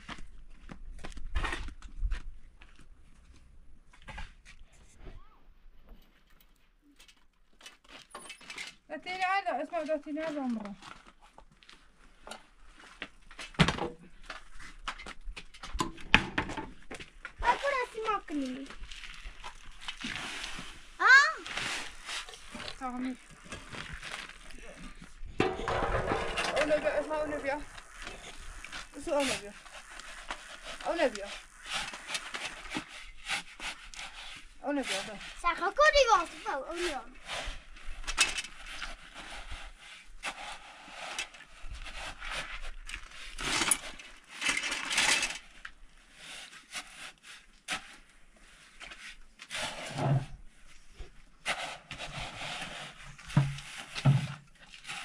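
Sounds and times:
shovel scraping concrete floor: 17.4s - 45.4s, 48.7s - 50.4s, 51.4s - 55.0s.

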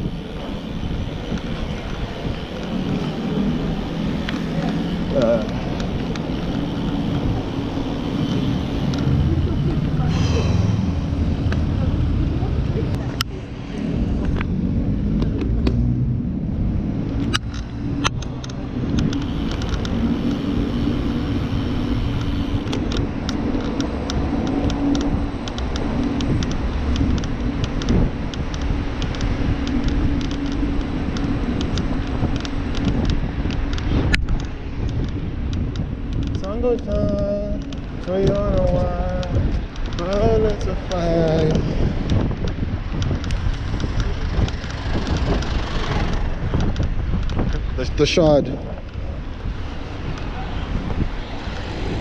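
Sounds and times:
wind and road noise rumble: 0.0s - 52.0s
small clicks and knocks: 17.1s - 20.5s, 22.1s - 47.8s.

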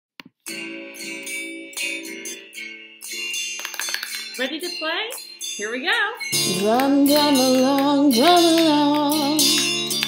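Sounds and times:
plucked string instrument music: 5.7s - 10.0s.

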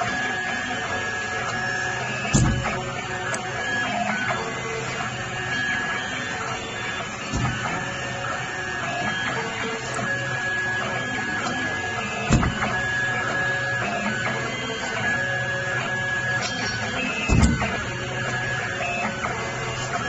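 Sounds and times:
cable stripping machine whirring: 0.0s - 20.0s
short thump: 2.3s - 2.8s, 17.3s - 17.7s.

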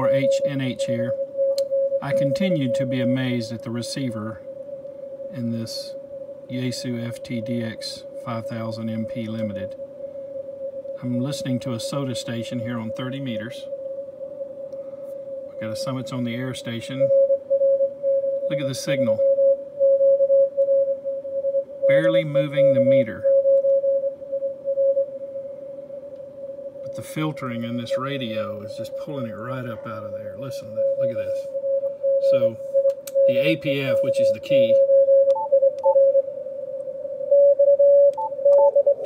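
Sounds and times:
radio static noise: 0.0s - 4.5s, 18.5s - 19.3s, 21.8s - 23.4s, 26.8s - 32.6s, 33.2s - 35.2s
faint radio hiss: 0.0s - 35.2s
morse code beep: 32.2s - 36.2s, 37.4s - 39.0s.

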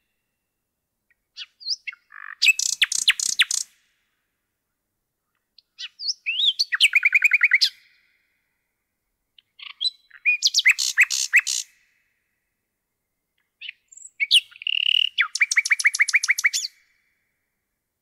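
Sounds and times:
nightingale singing: 1.1s - 3.9s, 5.3s - 8.3s, 9.4s - 12.3s, 13.0s - 17.2s.

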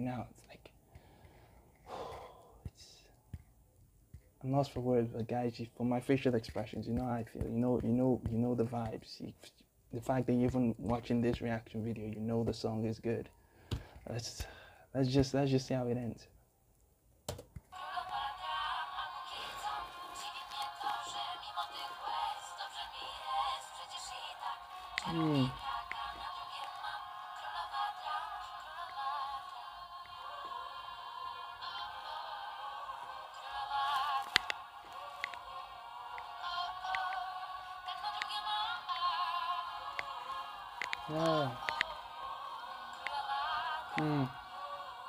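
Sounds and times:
man breathing: 0.8s - 2.8s, 13.4s - 14.9s, 19.3s - 19.9s
tinny pop song with woman singing: 17.7s - 45.0s
mouth clicks: 33.8s - 37.2s, 39.8s - 42.0s, 42.9s - 44.4s.

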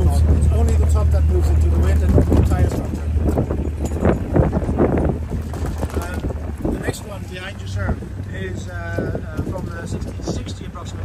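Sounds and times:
low steady drone: 0.0s - 11.0s
wind buffeting microphone: 0.0s - 11.0s.

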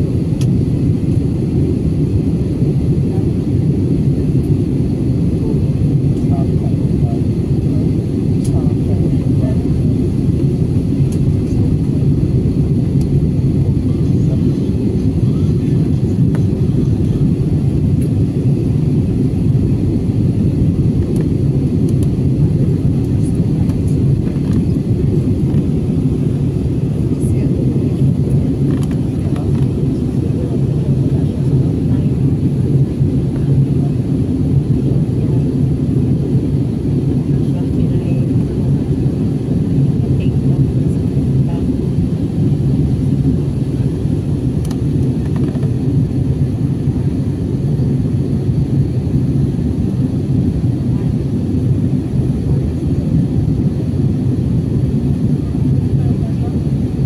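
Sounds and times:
jet engines rumbling: 0.0s - 57.0s.

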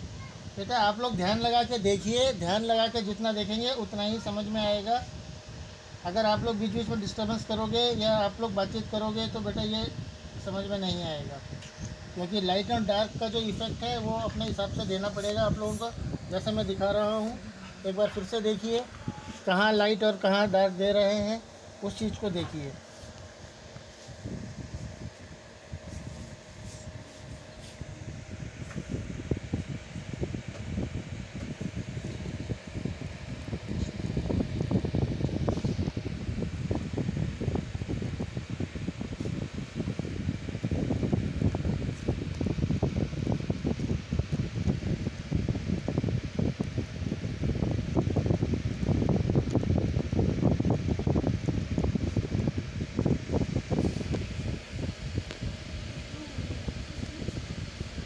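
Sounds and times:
air buffeting microphone: 0.0s - 58.0s.

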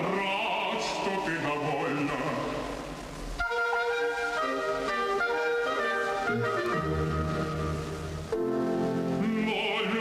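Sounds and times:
orchestra playing: 3.4s - 10.0s.

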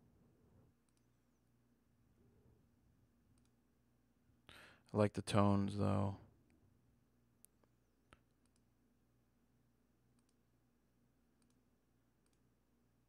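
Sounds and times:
faint computer mouse clicks: 0.8s - 1.2s, 3.3s - 3.6s, 7.4s - 8.7s, 10.1s - 10.4s, 11.4s - 11.6s, 12.2s - 12.5s.

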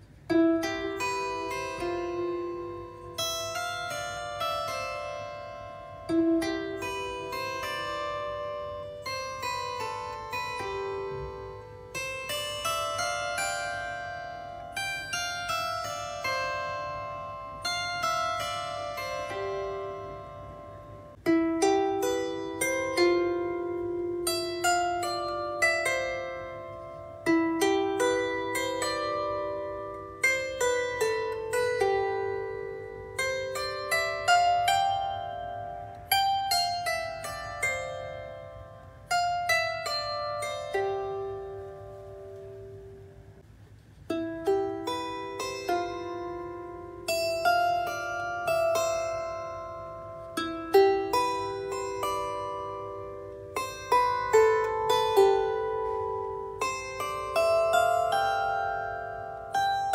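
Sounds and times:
plucked lyre harp: 0.0s - 59.9s.

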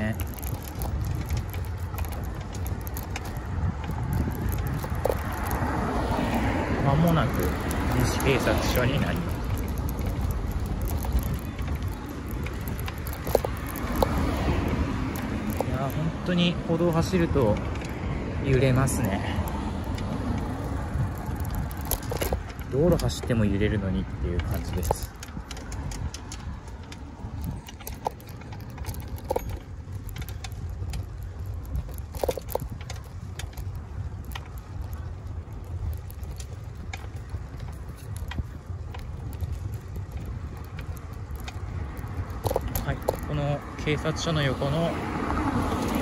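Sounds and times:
small vehicle rumbling and rattling: 0.0s - 46.0s.

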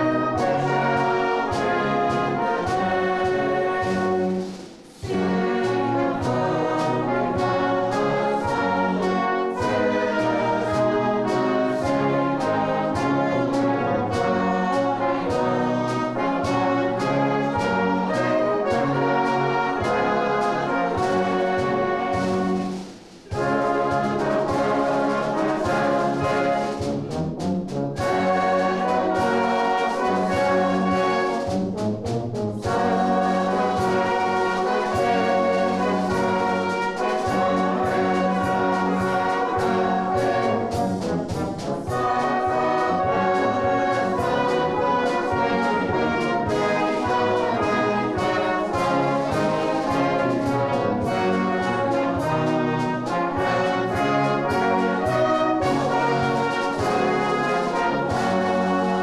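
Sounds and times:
brass band playing: 0.0s - 59.0s.

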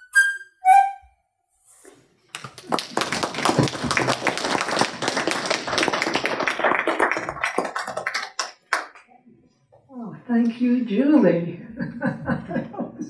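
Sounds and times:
small group applauding: 2.3s - 9.2s.

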